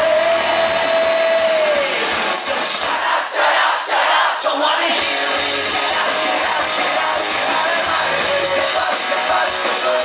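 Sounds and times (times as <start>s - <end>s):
live pop-punk band: 0.0s - 4.2s, 4.8s - 10.0s
crowd screaming and cheering: 0.0s - 10.0s.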